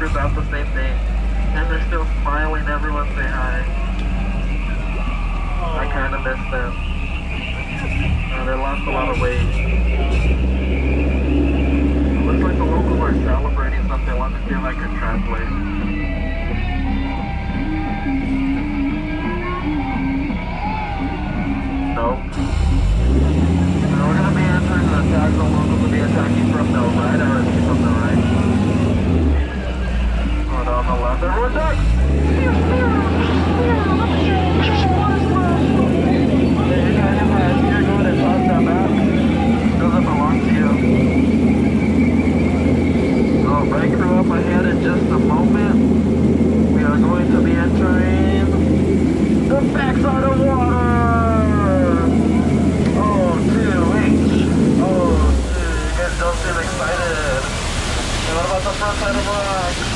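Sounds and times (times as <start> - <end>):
boat motor humming: 0.0 - 59.9.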